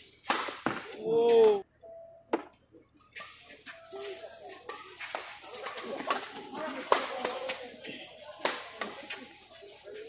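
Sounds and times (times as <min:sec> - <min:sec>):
rackets hitting shuttlecock: 0:00.0 - 0:01.6, 0:02.3 - 0:09.4
spectators chatter: 0:03.1 - 0:10.0.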